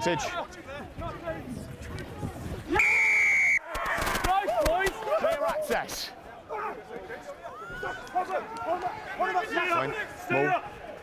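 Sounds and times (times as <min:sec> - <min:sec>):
referee's whistle blast: 0:02.8 - 0:03.7.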